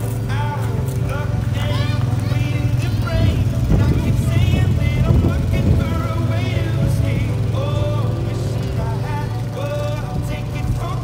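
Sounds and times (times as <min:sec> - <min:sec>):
atv engine running: 0:00.0 - 0:11.0
voices calling out: 0:00.0 - 0:11.0.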